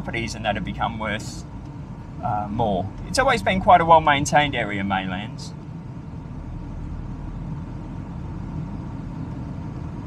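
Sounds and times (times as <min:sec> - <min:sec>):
car driving on road: 0:00.0 - 0:10.0.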